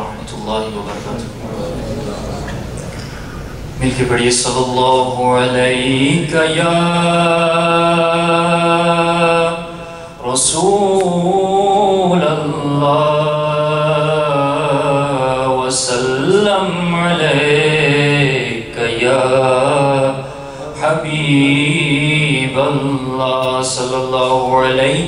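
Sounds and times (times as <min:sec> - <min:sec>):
man chanting into a microphone: 0:00.0 - 0:02.4, 0:03.8 - 0:25.0.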